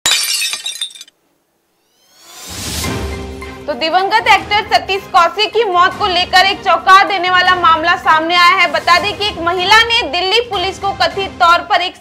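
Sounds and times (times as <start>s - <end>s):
glass shattering: 0.0s - 1.2s.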